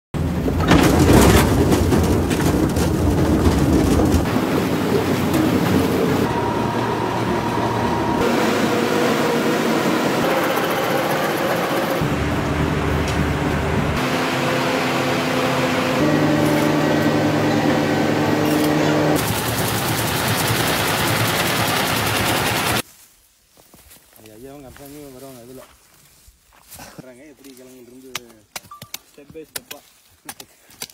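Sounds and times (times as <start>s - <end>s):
vehicles and machinery noise: 0.2s - 22.8s.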